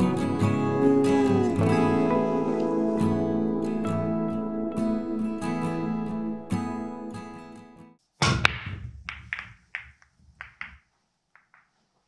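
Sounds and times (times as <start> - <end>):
cue ball cracking into billiard balls: 8.2 - 11.8
billiard balls clicking: 8.4 - 11.8.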